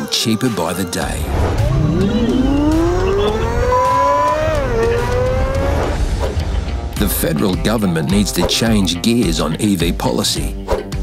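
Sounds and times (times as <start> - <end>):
low rumble: 1.2 - 6.9
car accelerating whine: 1.3 - 6.1.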